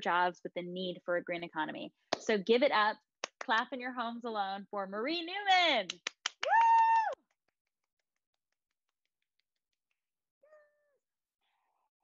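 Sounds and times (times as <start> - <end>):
woman cheering woo: 6.4 - 7.2.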